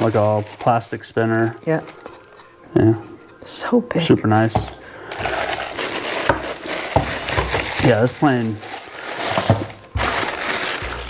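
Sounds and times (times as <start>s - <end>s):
plastic bag crinkling: 0.0s - 2.4s, 4.2s - 11.0s.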